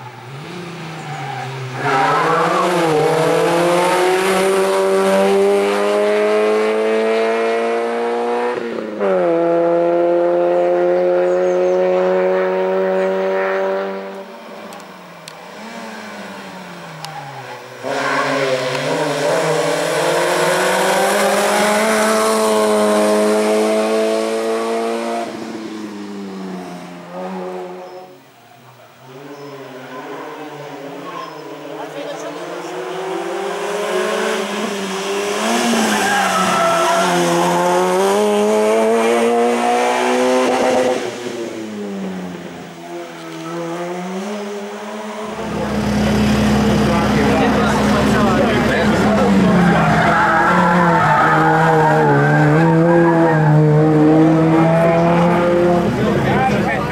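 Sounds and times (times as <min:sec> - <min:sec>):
race car engine revving: 0:00.2 - 0:28.1, 0:29.1 - 0:56.9.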